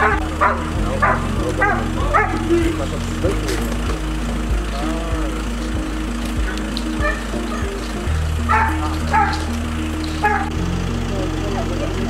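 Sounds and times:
dog barking: 0:00.0 - 0:02.5, 0:07.0 - 0:07.7, 0:08.5 - 0:09.5, 0:10.2 - 0:10.6
steady low hum: 0:00.0 - 0:12.0.

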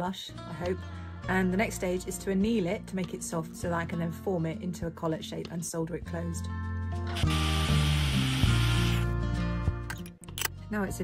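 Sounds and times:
background music with bass: 0:05.8 - 0:11.0.

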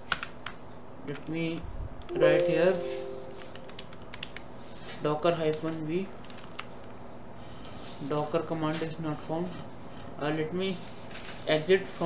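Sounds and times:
keyboard keys tapping: 0:02.1 - 0:04.4.

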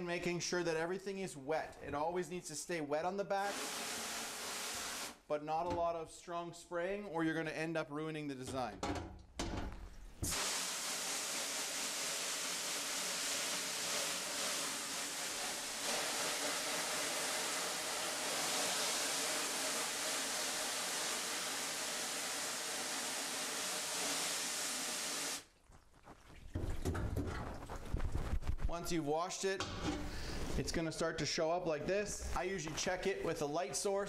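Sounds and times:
hose nozzle spraying water: 0:03.4 - 0:05.2, 0:10.2 - 0:25.5.

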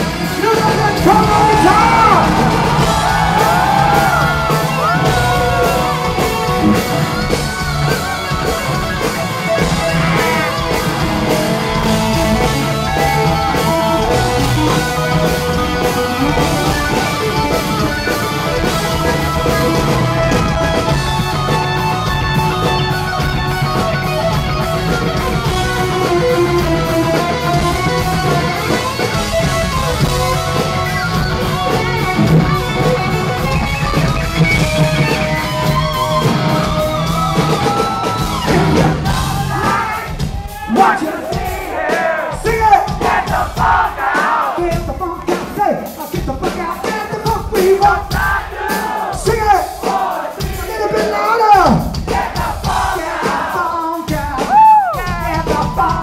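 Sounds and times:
electric guitar lead: 0:00.0 - 0:40.6
bass and drums: 0:00.0 - 0:56.0.

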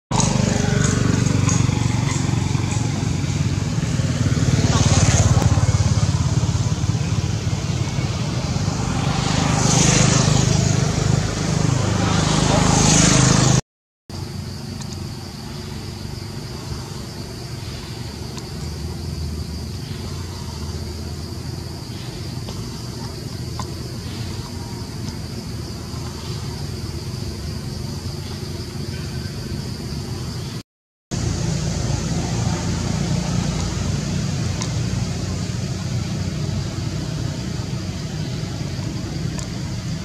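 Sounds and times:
motor vehicle low rumble: 0:00.1 - 0:40.0
high insect drone: 0:00.2 - 0:40.0.

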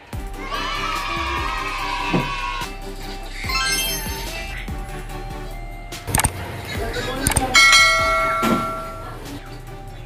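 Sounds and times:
notification bell chime: 0:03.5 - 0:04.4, 0:07.3 - 0:09.2
mouse clicks: 0:06.1 - 0:06.4, 0:07.3 - 0:07.5.

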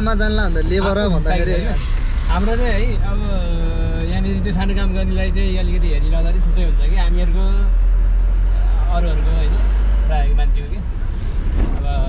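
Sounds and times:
people talking: 0:00.0 - 0:07.7, 0:08.6 - 0:10.9, 0:11.8 - 0:12.0
vehicle rumble: 0:00.0 - 0:12.0.

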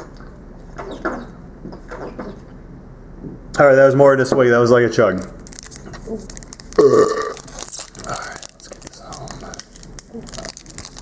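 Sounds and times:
foil wrapper crinkling: 0:05.1 - 0:11.0
man burping: 0:06.8 - 0:07.5.

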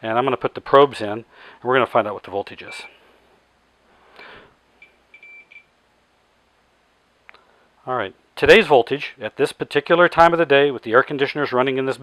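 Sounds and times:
multimeter beeping: 0:02.6 - 0:03.0, 0:04.8 - 0:05.7.

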